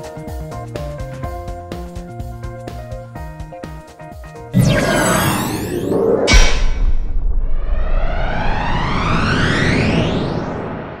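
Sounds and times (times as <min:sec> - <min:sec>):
electronic logo music: 0:04.6 - 0:07.2
sharp deep hit: 0:04.6 - 0:09.0
falling sweep: 0:04.6 - 0:11.0
rising sweep: 0:04.6 - 0:11.0.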